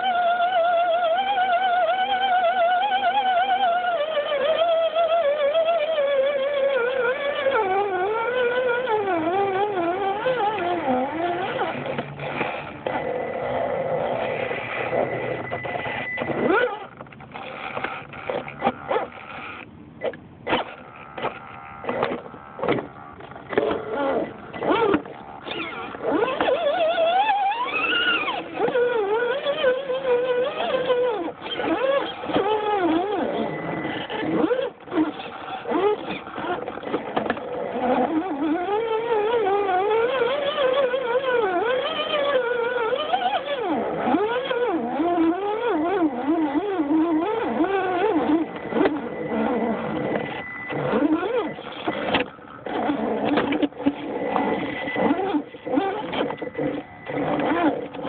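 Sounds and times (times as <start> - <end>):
electric motor and gears whining: 0.0 - 58.0.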